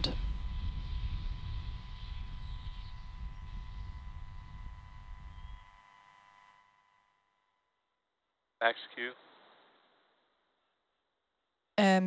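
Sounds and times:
distant rocket engine rumble: 0.0 - 5.7.

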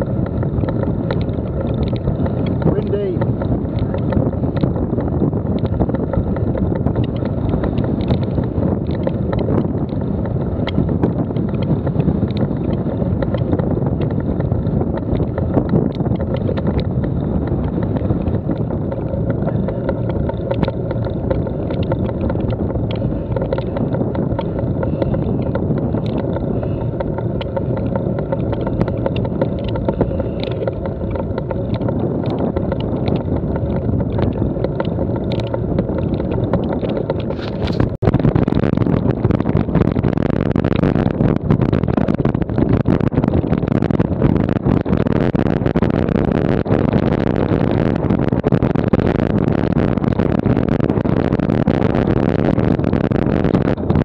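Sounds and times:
bicycle tyres on stony track: 0.0 - 54.0
bike rattling: 0.0 - 54.0
wind buffeting microphone: 0.0 - 54.0.

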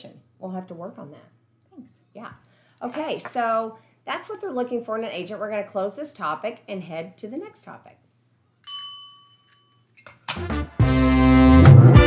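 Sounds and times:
desk service bell ding: 8.6 - 9.9.

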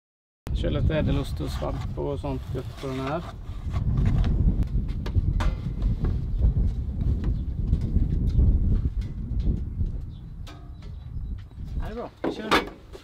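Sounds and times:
wind buffeting microphone: 0.5 - 13.0.

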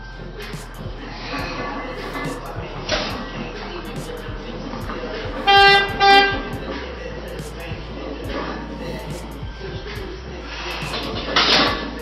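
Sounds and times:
background music with steady beat: 0.0 - 12.0
loud horn toots: 5.4 - 6.6.

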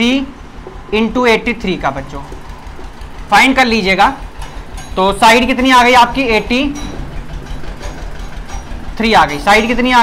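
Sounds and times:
low machine hum: 0.0 - 10.0.

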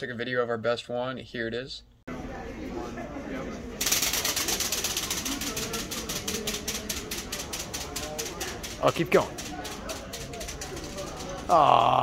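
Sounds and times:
toy flyer wings fluttering: 3.8 - 11.6.

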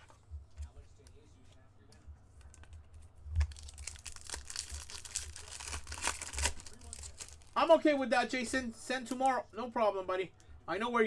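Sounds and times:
foil wrapper crackling and tearing: 3.4 - 7.7.

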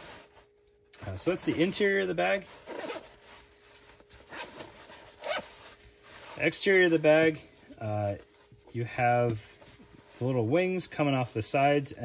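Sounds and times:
fabric handling: 0.0 - 11.4
zipper being pulled: 2.6 - 3.2, 4.2 - 6.4.

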